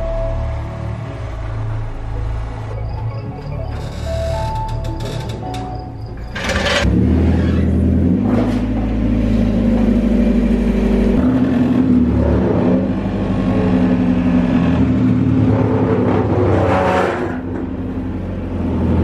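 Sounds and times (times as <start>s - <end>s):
car engine running: 6.0s - 16.4s.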